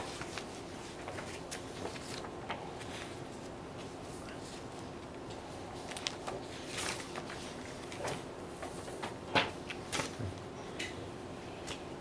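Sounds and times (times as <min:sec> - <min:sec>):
paper rustling: 0:00.0 - 0:10.2.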